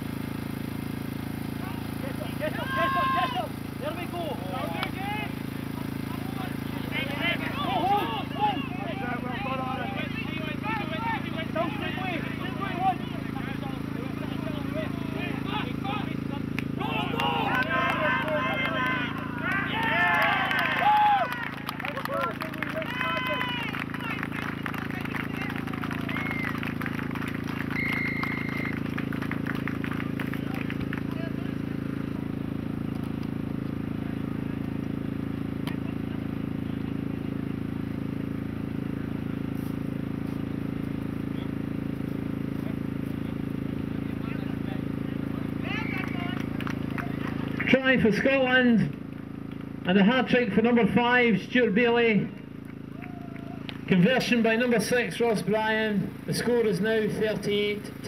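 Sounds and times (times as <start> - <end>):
low background hum: 0.0 - 58.0
crowd shouting and cheering: 1.6 - 32.2, 45.5 - 48.6, 52.8 - 55.8.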